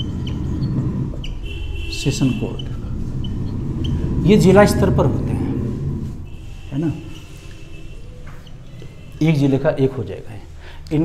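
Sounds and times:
whiteboard marker squeaking: 0:00.0 - 0:05.0, 0:06.1 - 0:09.3
low room hum: 0:00.0 - 0:11.0.

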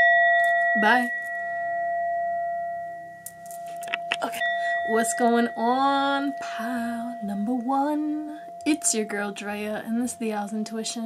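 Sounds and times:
singing bowl ringing: 0:00.0 - 0:10.8.

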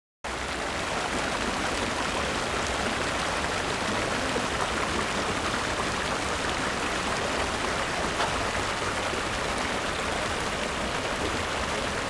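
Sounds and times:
water flowing over edge: 0:00.3 - 0:12.0.

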